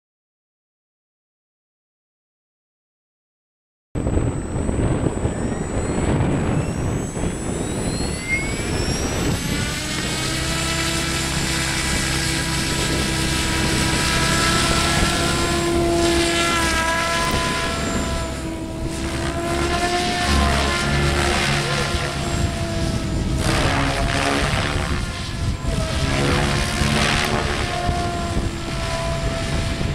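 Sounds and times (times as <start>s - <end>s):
rc helicopter whine: 4.0s - 29.9s.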